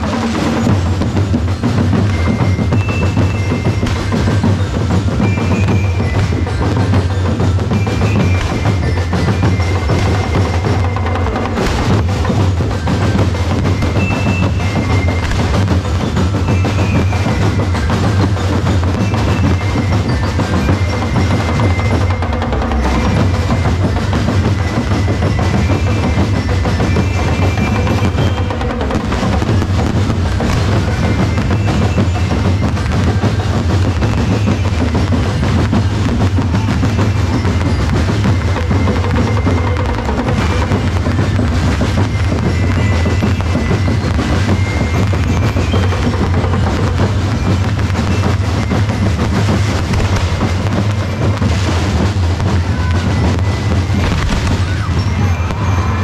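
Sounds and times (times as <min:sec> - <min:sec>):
drum band playing: 0:00.0 - 0:56.0.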